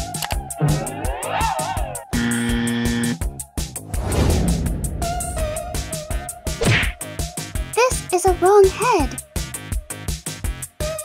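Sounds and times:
upbeat electronic music: 5.7 - 9.2.

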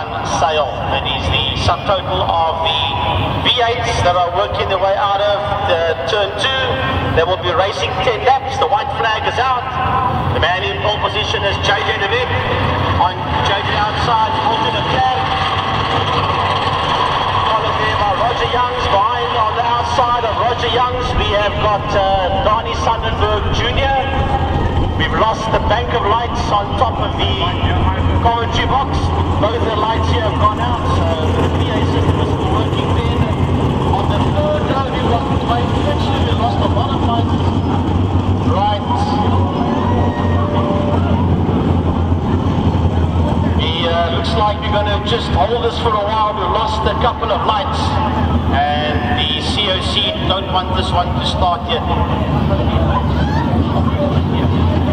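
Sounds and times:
race car engines droning: 0.0 - 54.9.

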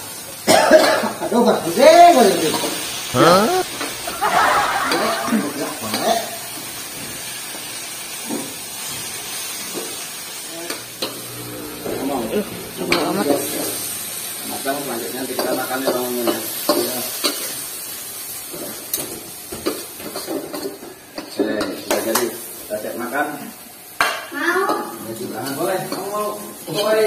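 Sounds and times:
faint sizzle: 0.0 - 27.0
people talking: 3.2 - 6.4.

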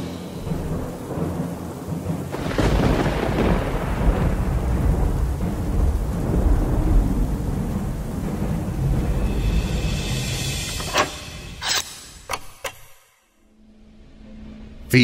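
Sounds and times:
thunder crack and rumble: 0.0 - 10.7
rain: 0.0 - 11.8.

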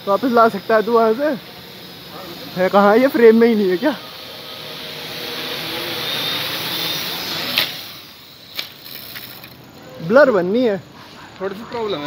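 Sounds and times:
quadcopter propellers whirring: 0.0 - 11.0.

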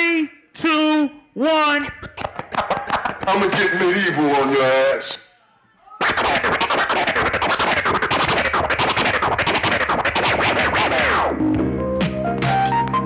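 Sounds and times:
vinyl record scratching: 1.9 - 5.0, 6.0 - 11.6.

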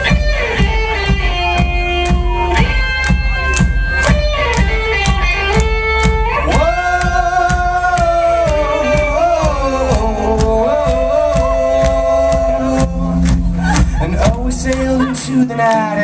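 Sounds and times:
drum beat: 0.0 - 15.4
electric guitars sliding notes: 0.0 - 16.0
heavy bass: 0.0 - 16.0.

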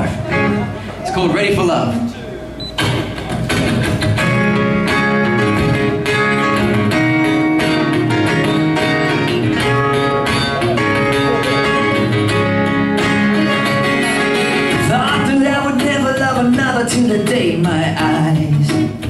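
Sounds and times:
solo acoustic guitar: 2.6 - 19.0.

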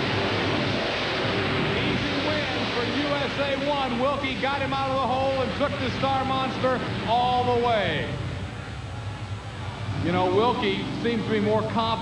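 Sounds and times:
monster truck engine running hard: 0.0 - 12.0.

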